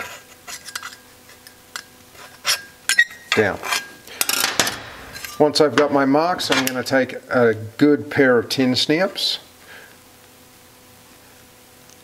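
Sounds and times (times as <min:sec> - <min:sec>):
scribe scratching metal: 0:00.0 - 0:04.0.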